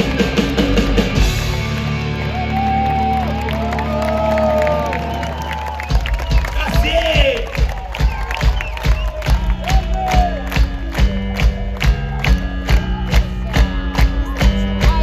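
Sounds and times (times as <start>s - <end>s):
loud drum beat: 0.0s - 2.1s, 5.8s - 15.0s
electric bass: 0.0s - 6.4s, 9.3s - 15.0s
crowd cheering and whooping: 0.1s - 15.0s.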